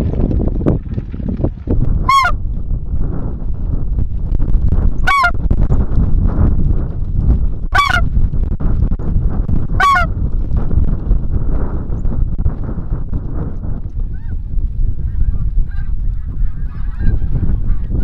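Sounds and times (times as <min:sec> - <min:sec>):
wind rumble on microphone: 0:00.0 - 0:18.0
goose call yelps: 0:02.1 - 0:02.4, 0:05.0 - 0:05.4, 0:07.8 - 0:08.0, 0:09.8 - 0:10.1.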